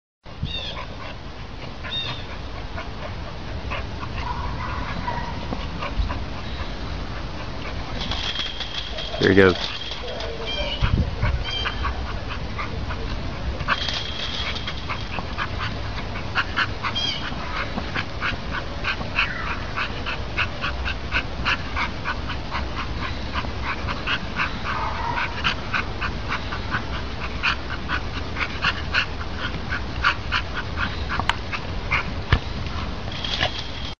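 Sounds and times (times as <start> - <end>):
dog scuffling: 4.0 - 22.3, 27.9 - 33.9
man speaking: 9.1 - 9.7.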